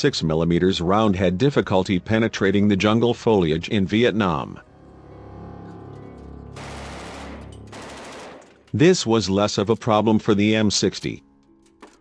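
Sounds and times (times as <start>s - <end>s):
background music with held chords: 0.0s - 12.0s
machine gun firing: 6.6s - 8.6s.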